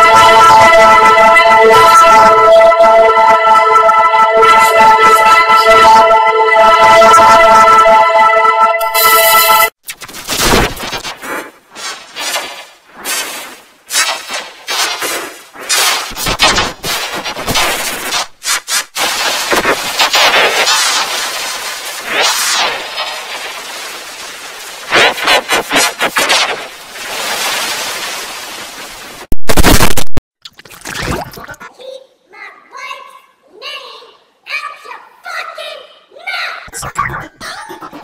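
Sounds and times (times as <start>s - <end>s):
sweeping pitch glides: 0.0s - 9.7s
harsh distorted crackling noise: 9.8s - 13.2s, 16.1s - 27.3s, 28.6s - 30.2s, 36.7s - 38.0s
loud clipped blast: 19.0s - 21.4s, 29.4s - 30.2s.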